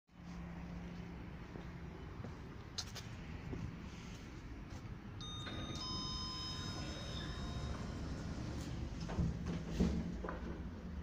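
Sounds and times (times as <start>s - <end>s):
elevator arrival chime: 5.2s - 9.0s.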